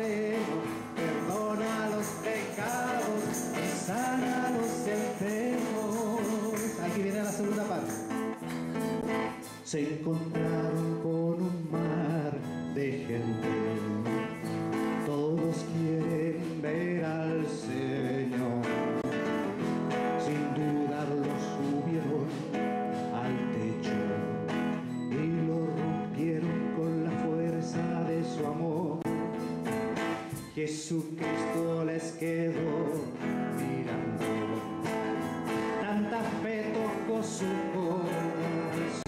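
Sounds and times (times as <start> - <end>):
man singing: 0.0 - 39.0
strummed acoustic guitar: 0.0 - 39.0.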